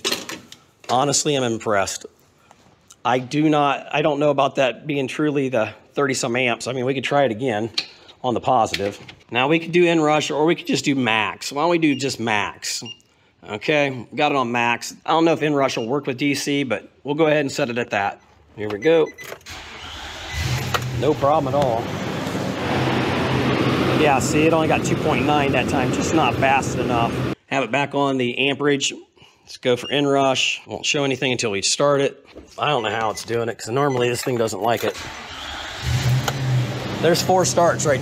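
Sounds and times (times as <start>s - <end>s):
van engine cranking and starting: 19.4s - 24.5s, 34.8s - 38.0s.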